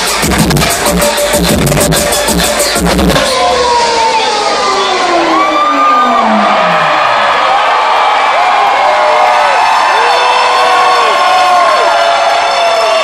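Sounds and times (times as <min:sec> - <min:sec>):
low tone sliding down: 0:03.0 - 0:07.2
crowd cheering and whooping: 0:03.0 - 0:13.0.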